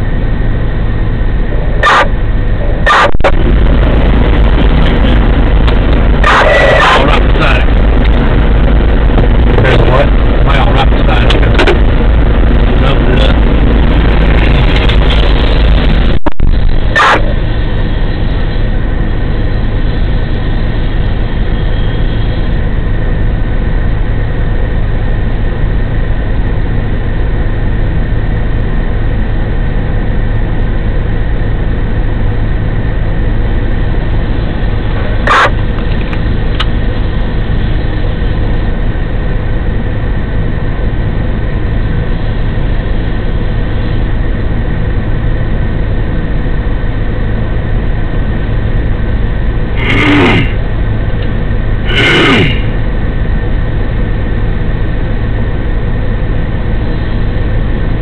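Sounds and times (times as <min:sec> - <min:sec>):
vehicle engine running: 0:00.0 - 0:58.0.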